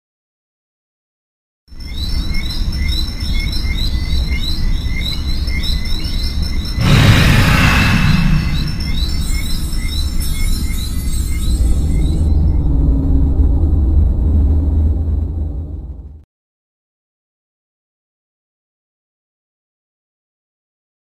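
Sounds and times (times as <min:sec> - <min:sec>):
high chirping: 0:01.7 - 0:12.6
rushing whoosh: 0:06.8 - 0:10.0
steady low rumble: 0:06.8 - 0:10.1, 0:11.8 - 0:16.2.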